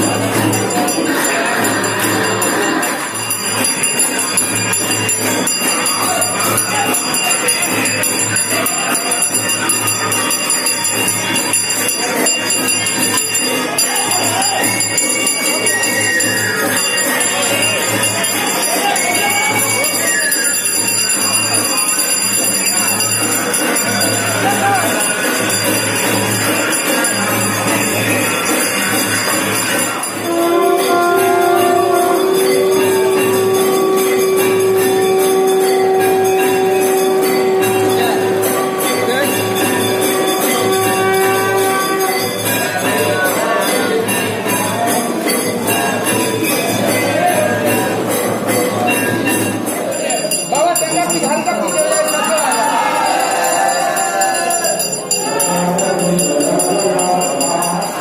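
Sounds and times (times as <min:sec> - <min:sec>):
temple bells ringing: 0:00.0 - 0:58.0
higher held tone: 0:30.0 - 0:42.5.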